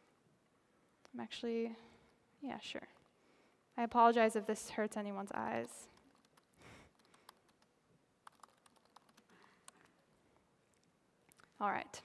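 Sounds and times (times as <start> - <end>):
typing on laptop keyboard: 5.4 - 10.1.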